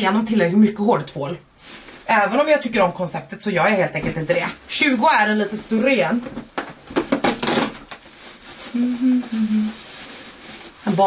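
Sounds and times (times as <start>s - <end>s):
paper and cardboard rustling: 4.0s - 11.0s.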